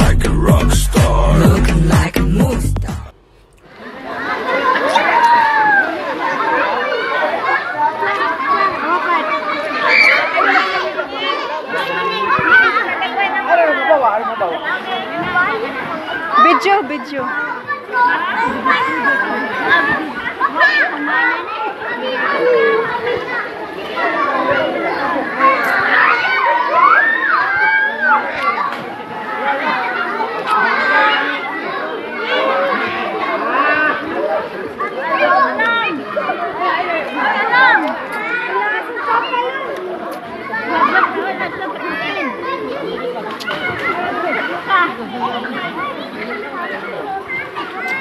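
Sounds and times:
women chattering: 0.8 - 26.8.

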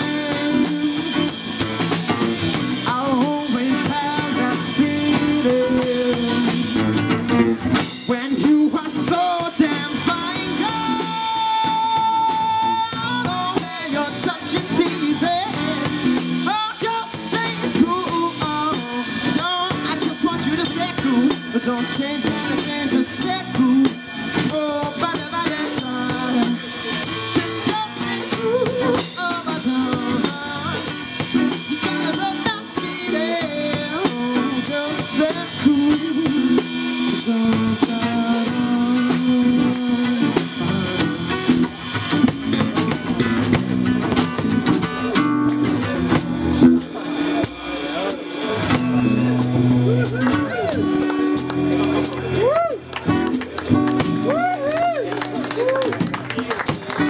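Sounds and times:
drum kit with snare rimshots: 0.0 - 57.0
electric bass line: 0.0 - 57.0.

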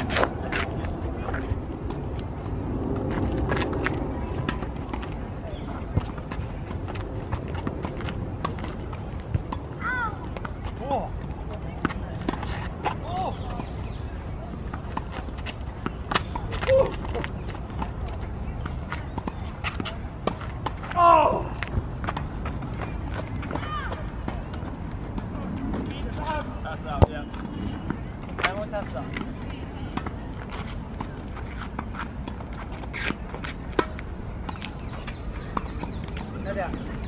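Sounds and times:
steady low rumble: 0.0 - 37.0.

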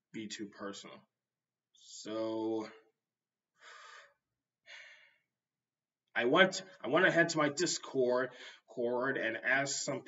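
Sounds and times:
man breathing faintly: 3.6 - 5.3.

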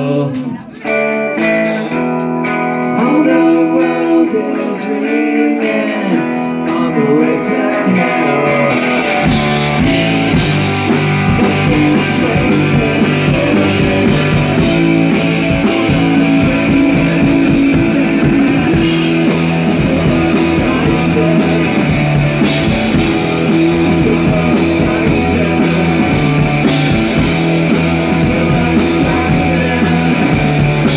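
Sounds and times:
drums: 0.0 - 30.9
electric guitar: 0.0 - 30.9
rock band playing: 0.0 - 30.9.

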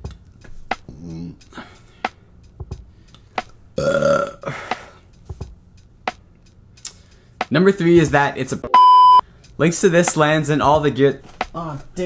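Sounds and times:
man burping loudly: 3.8 - 4.6.

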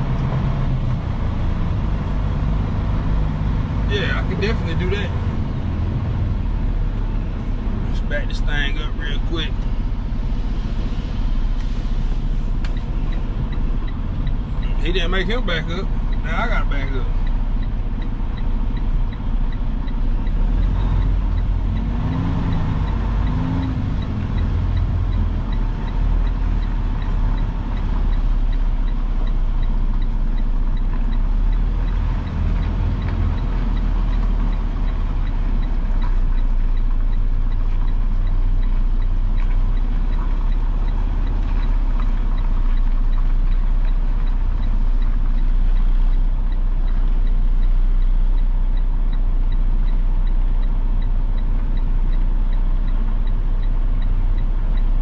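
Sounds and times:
diesel truck engine running: 0.0 - 55.0.

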